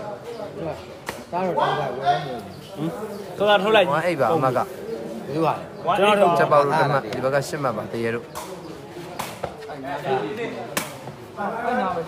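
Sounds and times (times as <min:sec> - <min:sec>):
faint crowd voices: 0:00.0 - 0:12.0.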